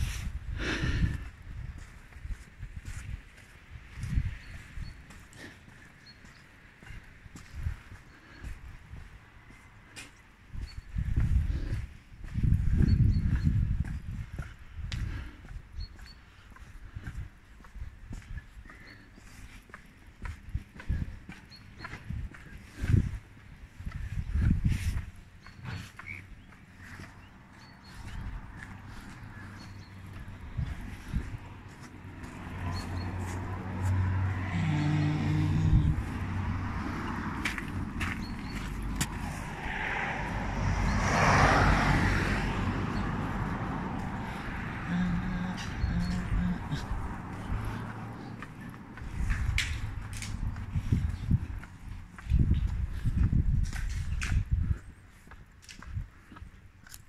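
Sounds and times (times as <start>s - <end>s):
wind and handling on microphone: 0.0s - 5.0s, 10.5s - 15.9s, 20.2s - 25.8s, 27.9s - 33.5s, 35.4s - 41.9s, 45.1s - 57.0s
vehicle engine passing: 26.9s - 52.1s.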